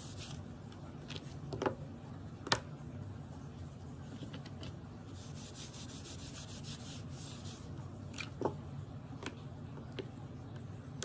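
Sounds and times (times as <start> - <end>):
cotton pad scrubbing metal plate: 5.2 - 7.7.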